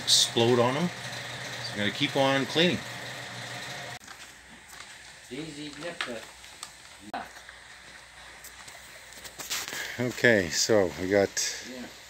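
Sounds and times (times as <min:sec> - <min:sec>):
low mechanical hum: 0:00.0 - 0:04.0.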